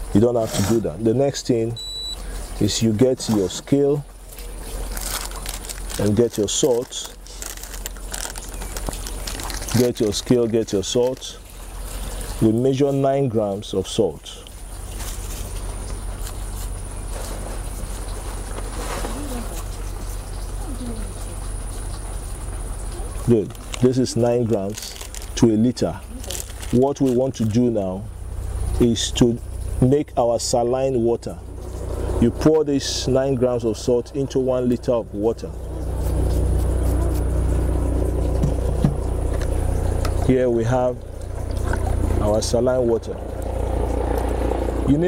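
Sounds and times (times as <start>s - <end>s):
low hum: 0.0s - 45.0s.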